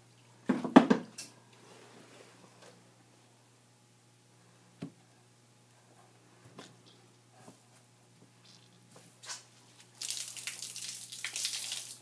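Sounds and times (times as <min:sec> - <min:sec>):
water splashing and pouring: 0:10.0 - 0:12.0.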